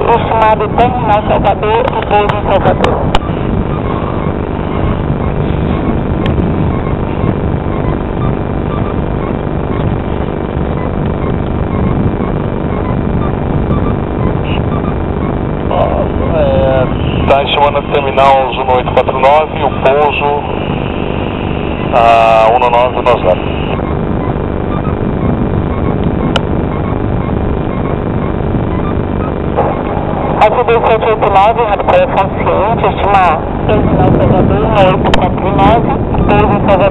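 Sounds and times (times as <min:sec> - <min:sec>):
person talking: 0:00.0 - 0:03.2, 0:15.7 - 0:20.7, 0:21.9 - 0:23.8, 0:29.6 - 0:36.9
engine-like rumble: 0:00.0 - 0:36.9
faint hum: 0:00.0 - 0:36.9.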